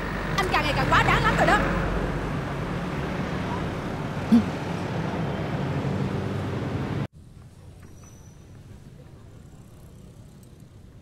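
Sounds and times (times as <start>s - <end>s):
distant street traffic rumble: 0.0s - 11.0s.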